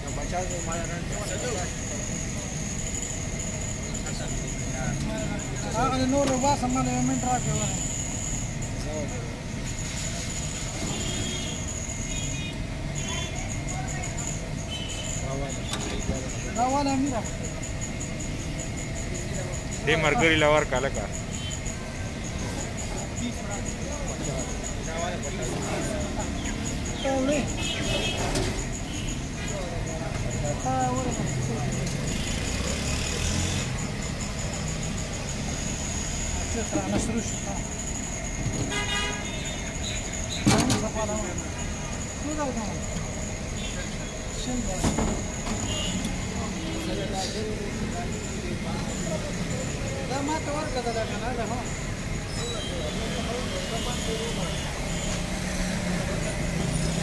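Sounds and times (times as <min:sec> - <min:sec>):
faint chatter: 0:00.0 - 0:57.0
indistinct voices: 0:00.0 - 0:57.0
low rumble of traffic: 0:00.0 - 0:57.0.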